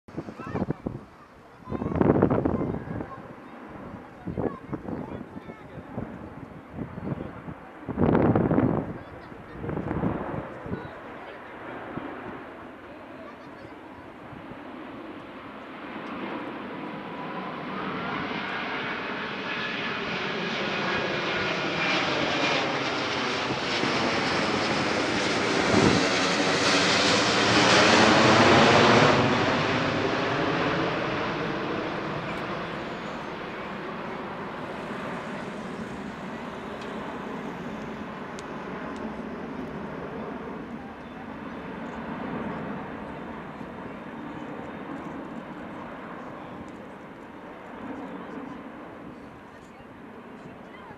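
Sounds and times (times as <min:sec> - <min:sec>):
airliner flying overhead: 0:00.1 - 0:50.9.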